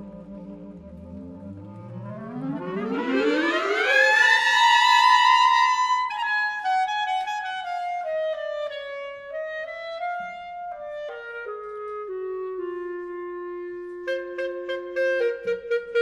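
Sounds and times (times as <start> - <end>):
jazz clarinet playing: 0.0 - 16.0.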